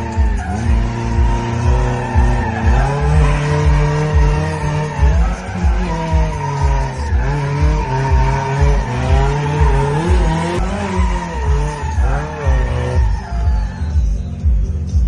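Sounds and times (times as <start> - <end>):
tyres squealing: 0.0 - 14.4
music with heavy bass beat: 0.0 - 15.0.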